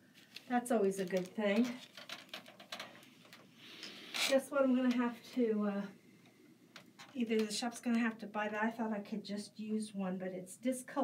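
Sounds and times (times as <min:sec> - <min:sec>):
plastic bag crinkling: 0:00.0 - 0:04.4.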